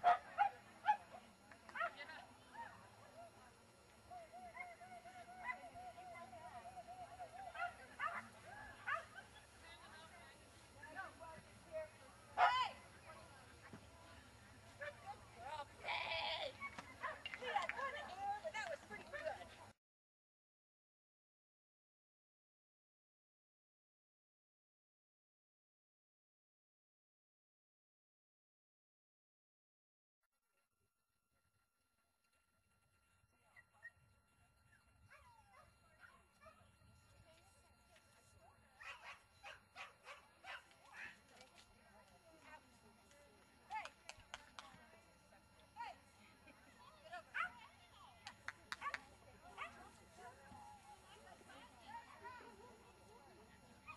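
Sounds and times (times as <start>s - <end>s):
drawn-out call: 15.8s - 16.5s.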